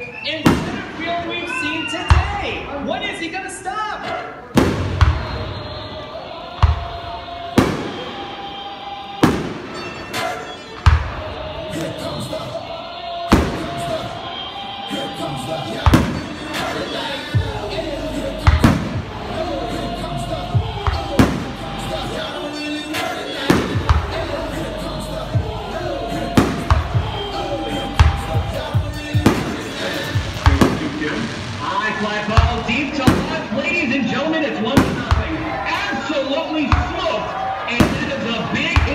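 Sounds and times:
fireworks bursting: 0:00.0 - 0:03.2, 0:04.5 - 0:38.9
voices: 0:00.0 - 0:38.9
music: 0:04.4 - 0:38.9.

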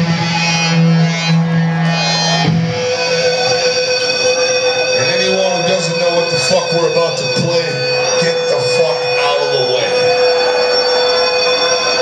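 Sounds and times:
electric guitar droning note: 0:00.0 - 0:12.0.

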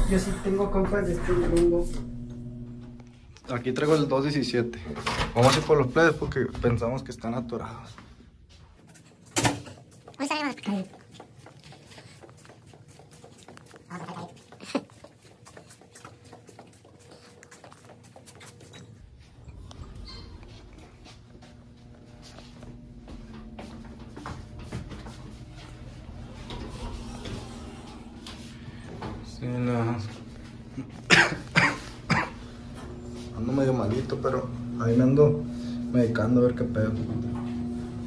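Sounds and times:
soft footsteps on carpet: 0:20.4 - 0:26.1
person coughing: 0:30.8 - 0:32.5.

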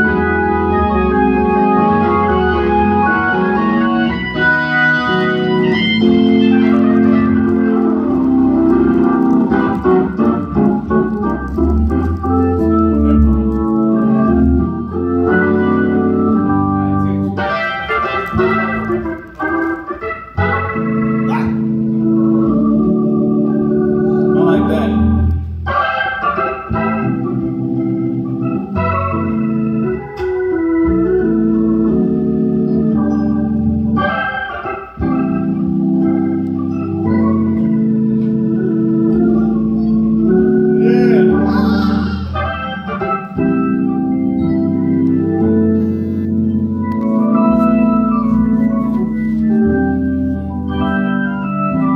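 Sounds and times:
organ playing gospel: 0:00.0 - 0:51.9.

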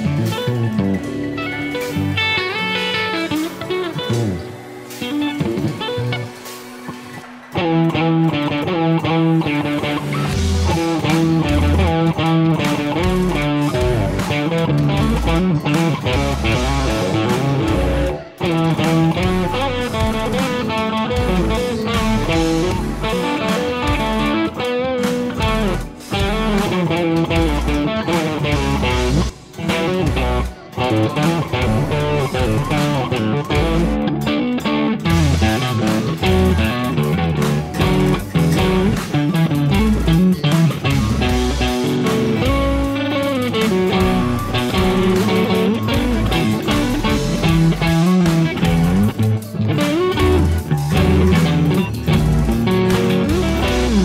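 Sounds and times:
backing track with bass and beat: 0:00.0 - 0:54.0
electric guitar playing rock: 0:00.0 - 0:54.0.

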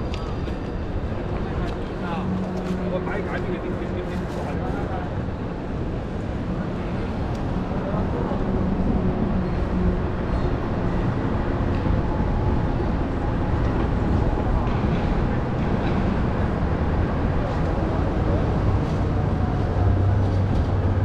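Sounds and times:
indistinct voices of passers-by: 0:00.0 - 0:21.0
low rumble of traffic: 0:00.0 - 0:21.0.

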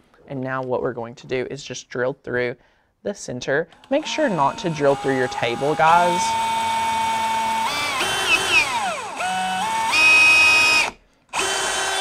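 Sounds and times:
cordless drill boring into wood: 0:03.7 - 0:12.0.

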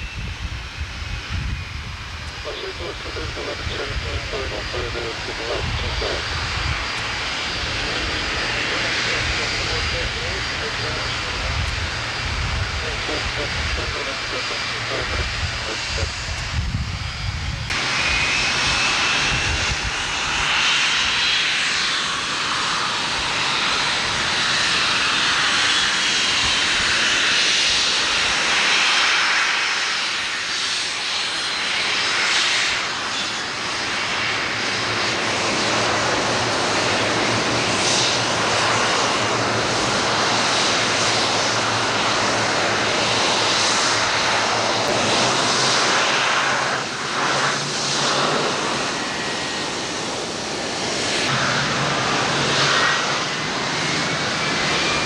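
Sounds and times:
jet engines roaring with whine: 0:00.0 - 0:55.0.

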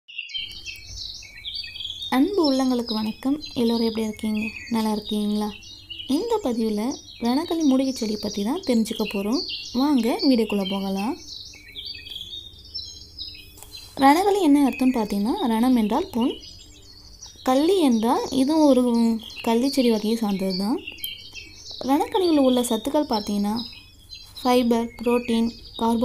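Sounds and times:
small birds singing: 0:00.1 - 0:26.0.

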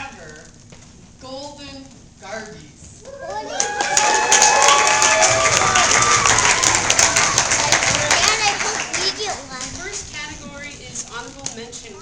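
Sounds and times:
audience clapping and cheering: 0:03.2 - 0:09.7
scattered chatter: 0:04.6 - 0:12.0.

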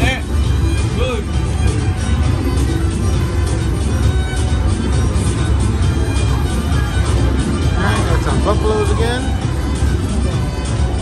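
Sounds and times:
slot machine reel-spin music: 0:00.0 - 0:11.0
background chatter: 0:04.8 - 0:11.0.

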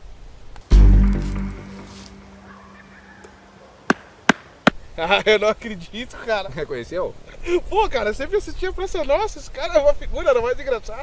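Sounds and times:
deep hit with low tone: 0:00.7 - 0:02.4.

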